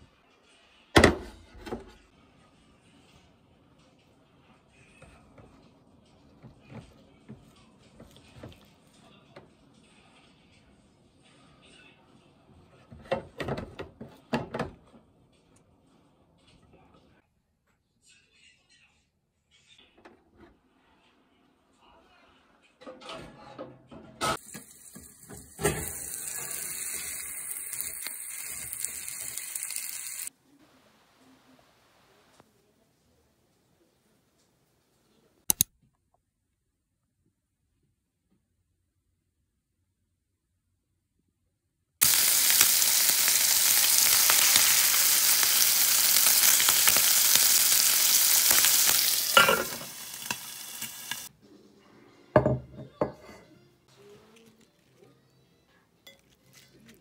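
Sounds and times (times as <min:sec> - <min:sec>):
bacon and egg sizzling in pan: 0:24.4 - 0:30.3, 0:42.0 - 0:51.3.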